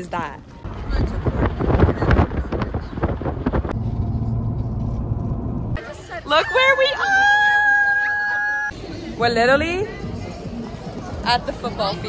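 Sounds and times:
car engine and road hum: 0:00.5 - 0:06.0
gusty wind rush: 0:00.6 - 0:05.8.

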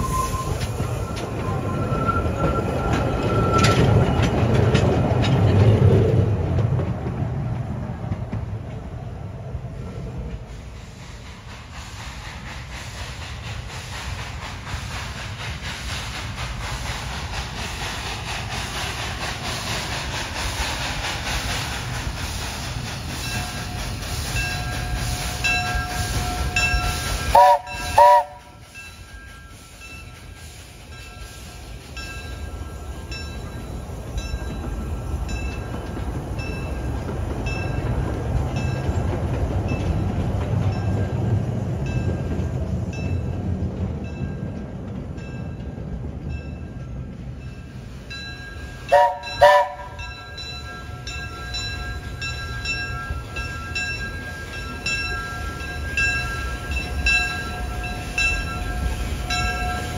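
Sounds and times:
steam hissing: 0:00.0 - 0:04.5, 0:09.7 - 0:44.7, 0:45.4 - 0:59.9
train rolling rumble: 0:00.0 - 0:59.9
locomotive bell ringing: 0:23.2 - 0:30.3, 0:30.9 - 0:37.9, 0:45.2 - 0:59.9
steam whistle blasts: 0:27.2 - 0:28.6, 0:48.9 - 0:50.0.

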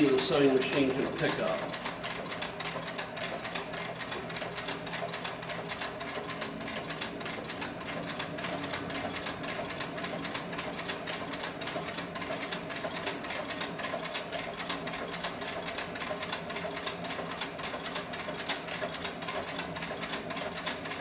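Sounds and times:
sewing machine needle ticking: 0:00.0 - 0:21.0
steady motor hum: 0:00.0 - 0:21.0.

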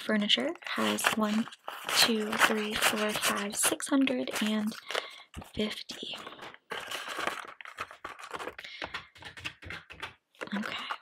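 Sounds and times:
paper bills handled: 0:00.7 - 0:11.0
plastic binder pocket rustling: 0:00.7 - 0:11.0
calculator keys clicking: 0:08.4 - 0:10.7.

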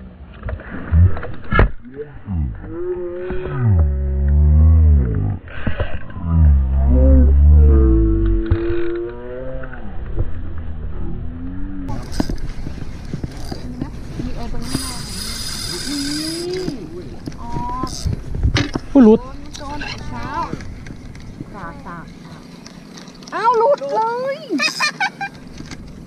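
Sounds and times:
long deep vocal cries: 0:02.0 - 0:05.5, 0:06.1 - 0:10.0.

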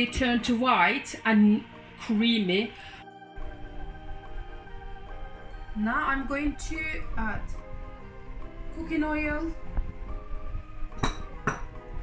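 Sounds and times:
background music: 0:00.0 - 0:12.0
glass clinking on countertop: 0:11.0 - 0:11.8.

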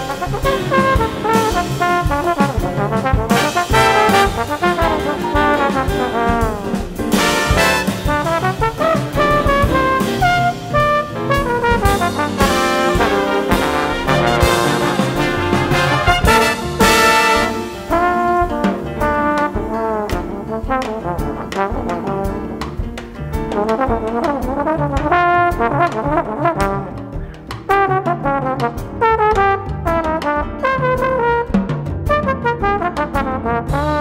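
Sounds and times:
jazz trombone solo: 0:00.0 - 0:22.8, 0:23.4 - 0:34.0
big band rhythm section: 0:00.0 - 0:34.0.

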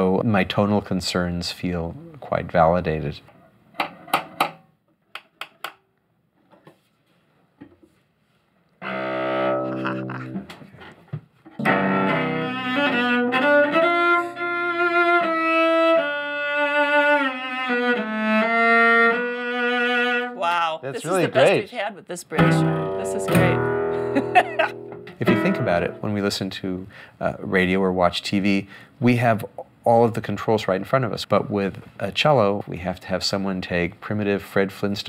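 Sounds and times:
cello bowed: 0:08.8 - 0:10.5, 0:11.6 - 0:21.6, 0:22.4 - 0:26.5.

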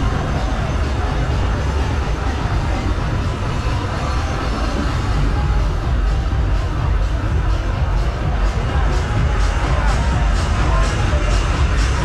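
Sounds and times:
music with heavy bass: 0:00.0 - 0:12.0
steady low rumble: 0:00.0 - 0:12.0.

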